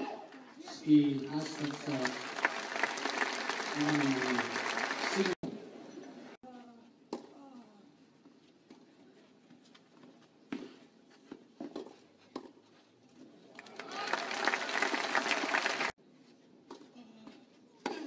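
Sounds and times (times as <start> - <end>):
crowd applause: 1.0 - 5.4, 13.6 - 15.9.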